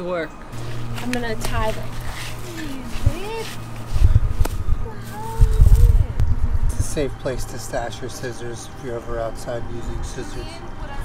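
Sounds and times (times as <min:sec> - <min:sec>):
low thumps: 0:03.0 - 0:07.2.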